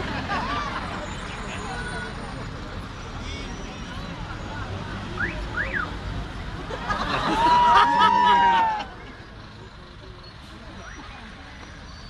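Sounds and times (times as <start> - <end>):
bus engine running: 0.0 - 12.0
crowd chatter: 0.0 - 12.0
street traffic: 0.0 - 12.0.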